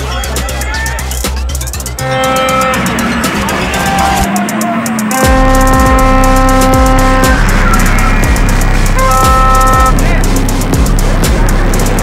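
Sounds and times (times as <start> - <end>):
loud music with drum beat: 0.0 - 12.0
car horn blaring: 1.9 - 10.0.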